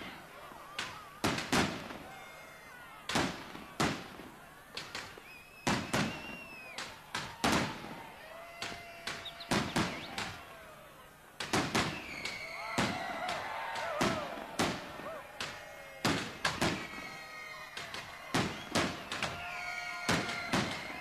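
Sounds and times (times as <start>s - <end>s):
fireworks banging: 0.0s - 10.6s, 11.4s - 21.0s
whistling fireworks: 0.0s - 21.0s.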